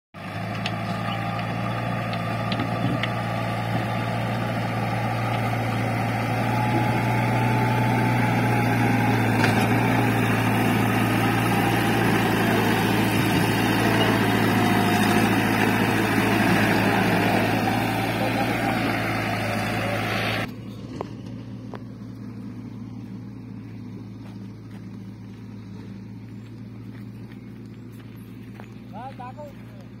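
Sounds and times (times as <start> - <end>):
diesel engine running hard: 0.2 - 30.0.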